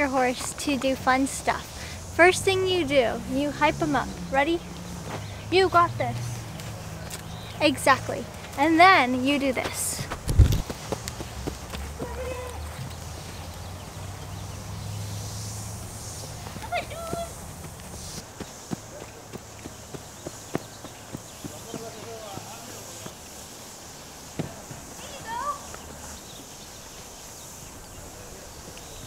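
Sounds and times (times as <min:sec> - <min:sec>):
horse hoofbeats on sand: 0:03.2 - 0:13.9, 0:16.4 - 0:23.4.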